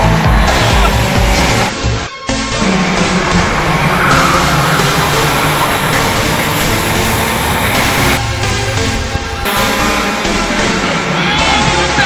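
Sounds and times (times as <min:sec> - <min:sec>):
kart engines buzzing: 0:00.0 - 0:12.0.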